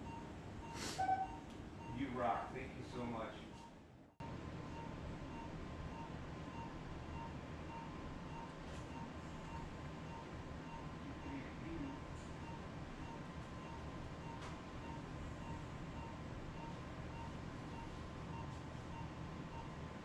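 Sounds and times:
equipment hum and airflow: 0:00.0 - 0:20.0.

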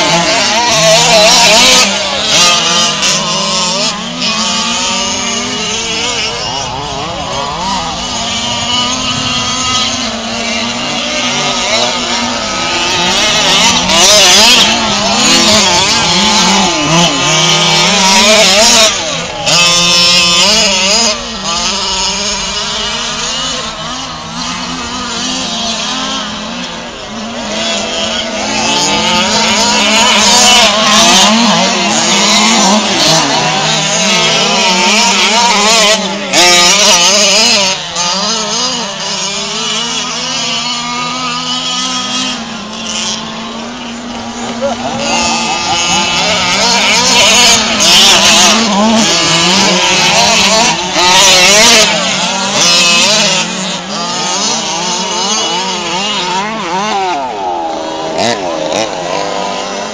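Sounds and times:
rc truck engines revving: 0:00.0 - 0:59.9.

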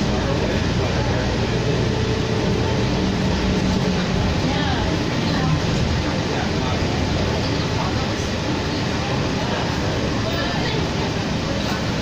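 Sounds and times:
bus drone from inside: 0:00.0 - 0:12.0
low engine hum: 0:00.0 - 0:12.0.

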